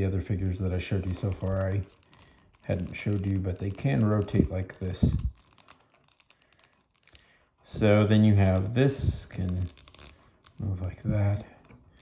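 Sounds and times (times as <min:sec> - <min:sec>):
plastic action figure joints clicking: 0:08.2 - 0:10.6.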